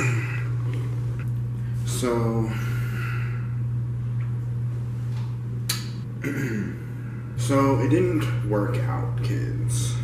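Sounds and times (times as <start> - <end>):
steady low hum: 0.0 - 10.0
sharp click: 5.7 - 6.0.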